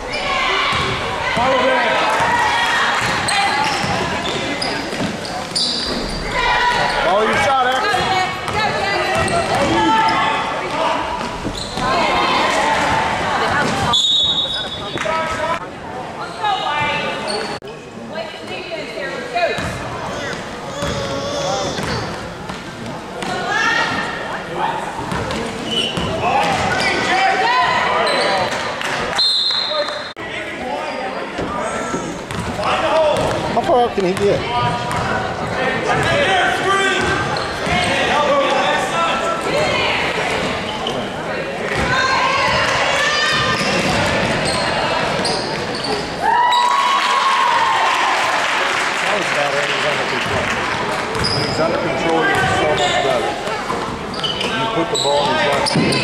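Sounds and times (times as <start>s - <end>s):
spectators' voices: 0.0s - 56.0s
basketball bouncing on gym floor: 34.0s - 35.1s.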